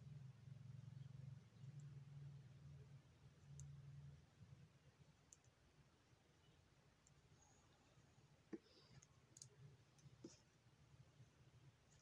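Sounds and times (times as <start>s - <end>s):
knitting needles clicking: 8.5s - 10.4s.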